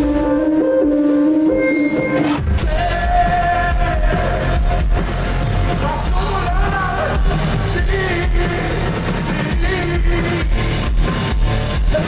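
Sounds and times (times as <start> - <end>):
bass guitar: 0.0 - 12.0
drum kit beat: 0.0 - 12.0
electric guitars: 0.0 - 12.0.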